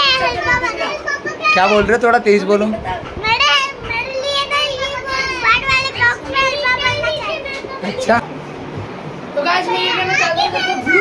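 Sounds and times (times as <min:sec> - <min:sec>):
children talking and calling out: 0:00.0 - 0:11.0.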